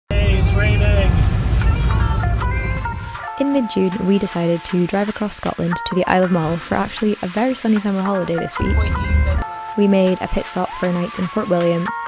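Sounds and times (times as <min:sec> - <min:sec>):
car cabin road noise: 0:00.1 - 0:03.2, 0:08.4 - 0:09.4
person speaking: 0:03.4 - 0:11.7
held music notes: 0:07.7 - 0:12.0.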